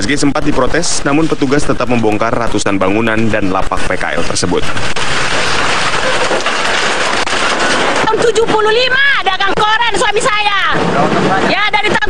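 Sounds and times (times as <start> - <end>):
corrugated metal sheets collapsing: 4.1 - 12.0.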